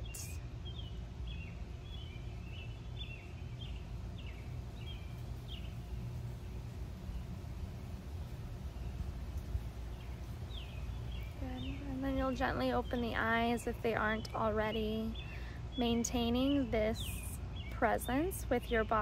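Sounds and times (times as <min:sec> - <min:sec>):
low outdoor background rumble: 0:00.0 - 0:19.0
small birds chirping: 0:00.0 - 0:19.0.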